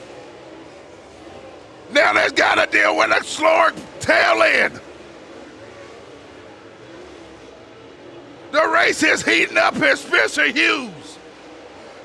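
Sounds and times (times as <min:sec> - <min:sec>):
faint race car engine drone: 0:00.0 - 0:12.0.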